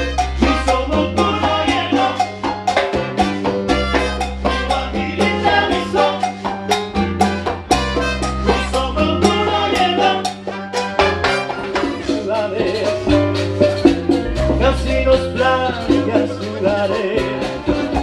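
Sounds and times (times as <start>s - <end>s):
horn section: 0.0s - 2.2s, 3.0s - 6.2s, 7.2s - 12.8s
bass line: 0.0s - 18.0s
congas: 0.0s - 18.0s
drum kit beat: 0.0s - 18.0s.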